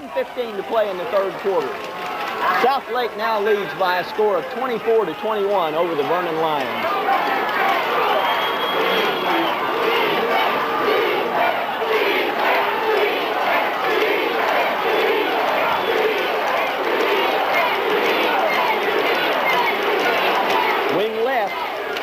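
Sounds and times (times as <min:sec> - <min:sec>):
crowd shouting and cheering: 0:00.0 - 0:22.0.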